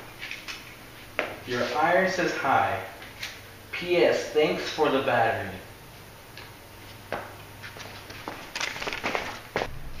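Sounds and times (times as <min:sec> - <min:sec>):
people moving on a hard floor: 0:06.8 - 0:09.8.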